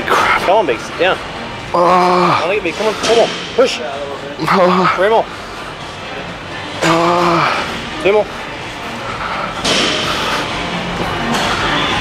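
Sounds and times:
man groaning: 0:01.7 - 0:02.5, 0:06.8 - 0:07.7.

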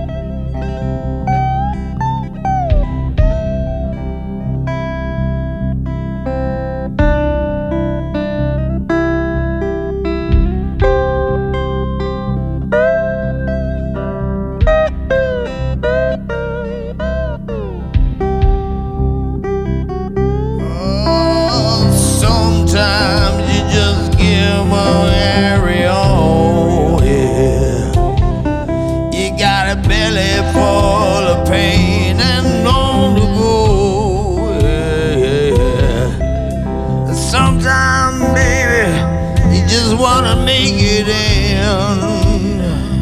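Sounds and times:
bass backing: 0:00.0 - 0:43.0
electric guitar solo: 0:00.0 - 0:43.0.

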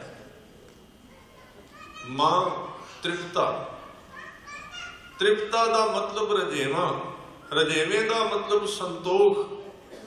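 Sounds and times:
man speaking: 0:02.0 - 0:03.8, 0:05.2 - 0:09.6.

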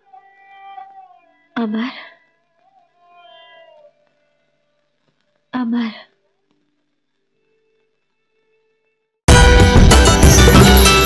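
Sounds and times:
held instrumental note: 0:09.3 - 0:11.0.

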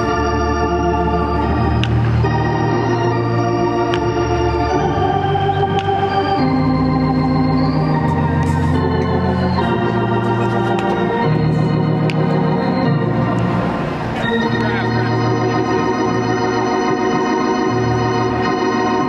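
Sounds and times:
organ playing sustained chords: 0:00.0 - 0:19.0.

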